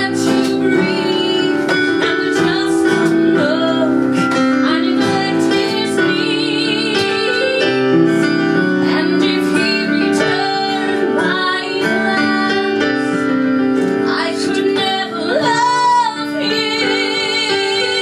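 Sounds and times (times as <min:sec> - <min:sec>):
piano accompaniment: 0:00.0 - 0:18.0
woman singing a ballad: 0:00.0 - 0:18.0.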